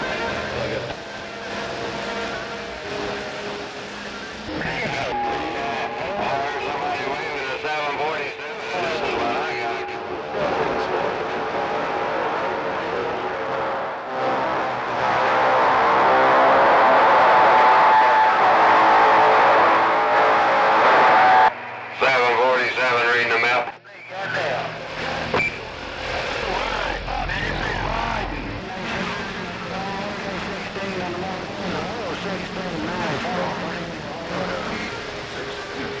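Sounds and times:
distorted radio voices: 0.0 - 11.4, 19.9 - 36.0
radio static: 21.4 - 36.0.

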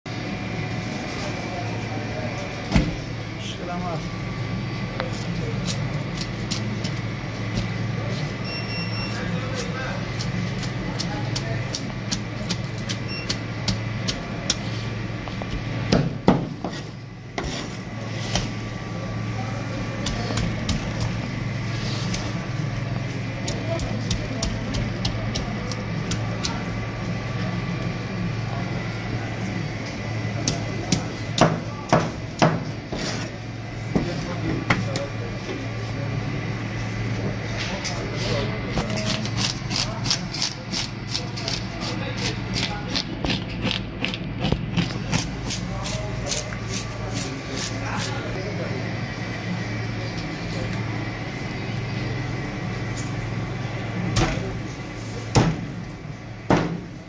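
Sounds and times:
steady low hum: 0.1 - 57.0
knife scraping fish scales: 38.9 - 48.3.

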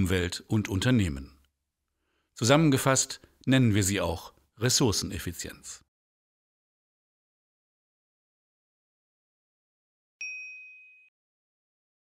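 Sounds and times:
bell-like chime ding: 10.2 - 11.2.

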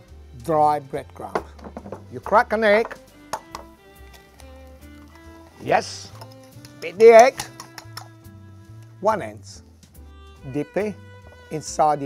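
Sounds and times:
background music: 0.0 - 12.0
egg cracked on ceramic bowl: 2.9 - 4.2, 6.1 - 8.2.

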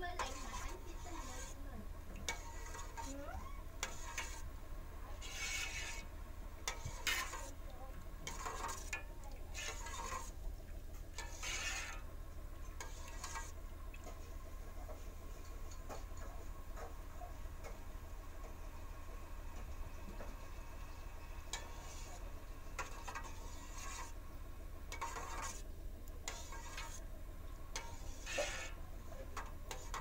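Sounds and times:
metal spoon stirring liquid in pot: 0.0 - 30.0
spoon scraping pot: 0.2 - 10.4, 11.0 - 14.2, 20.8 - 24.2, 24.9 - 27.0, 27.7 - 30.0.

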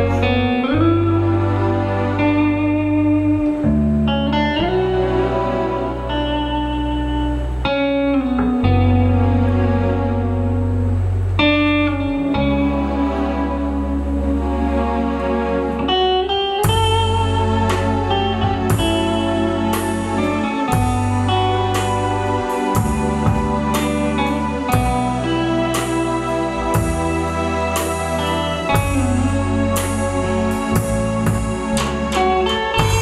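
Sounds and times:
bass notes: 0.0 - 33.0
electric guitar melody: 0.0 - 33.0
keyboards: 0.0 - 33.0
drums with cymbal crashes: 16.6 - 22.0, 22.7 - 24.1, 26.7 - 28.2, 30.7 - 33.0.

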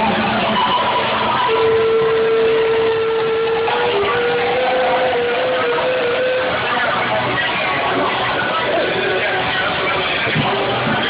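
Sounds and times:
live rock band playing: 0.0 - 11.0
long held note: 0.3 - 9.4.

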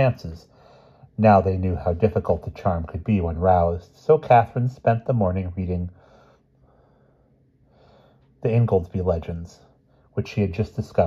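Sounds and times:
faint breath drawn in: 0.4 - 1.2, 5.9 - 8.4.

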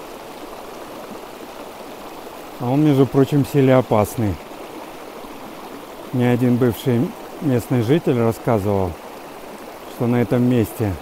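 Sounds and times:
stream flowing over stones: 0.0 - 11.0.

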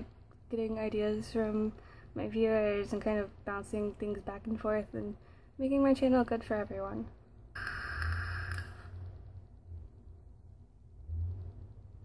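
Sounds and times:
e-cigarette airy hiss: 7.6 - 9.0.

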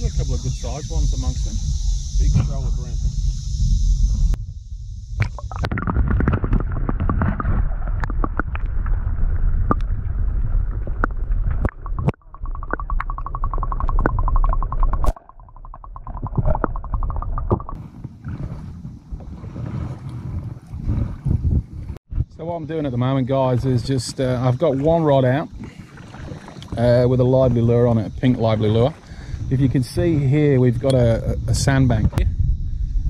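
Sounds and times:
underwater rumble of water: 0.0 - 33.0
sharp clicks: 11.6 - 17.8
fast even pulsing: 11.7 - 17.8.

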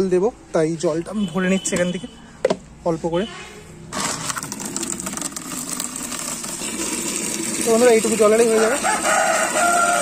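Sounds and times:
tap water pouring into bucket: 3.9 - 10.0.

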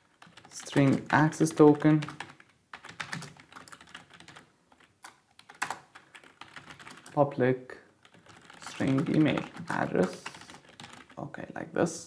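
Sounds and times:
keyboard keys clicking: 0.0 - 7.2, 8.0 - 11.2.

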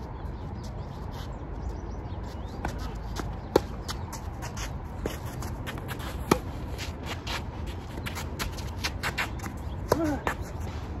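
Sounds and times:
footsteps on court: 2.2 - 11.0
racket hitting ball: 5.7 - 6.6.

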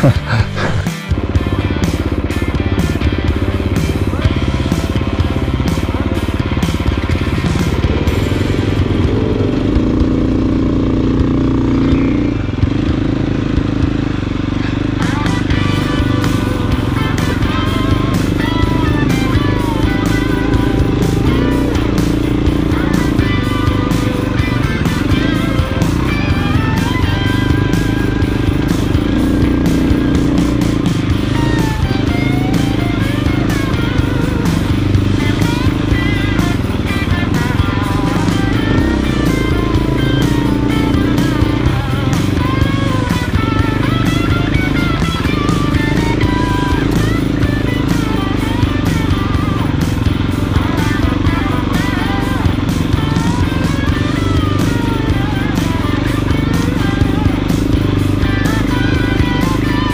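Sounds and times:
background music: 0.0 - 59.9
dirt bike engine revving: 0.0 - 59.9.

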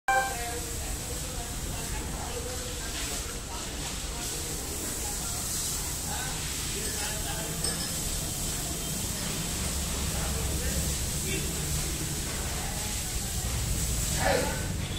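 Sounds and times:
faint indistinct voices: 0.1 - 14.9.

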